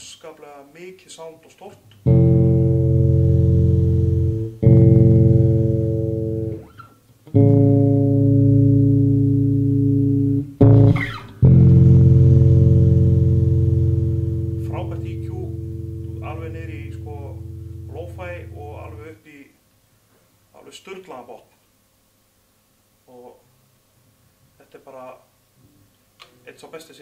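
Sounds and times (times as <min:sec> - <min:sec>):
electric bass notes ringing: 0:02.0 - 0:19.1.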